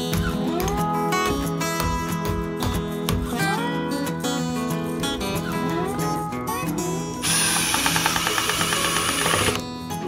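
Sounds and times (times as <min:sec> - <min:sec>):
acoustic guitar music: 0:00.0 - 0:10.0
impact driver rattling: 0:07.2 - 0:09.6.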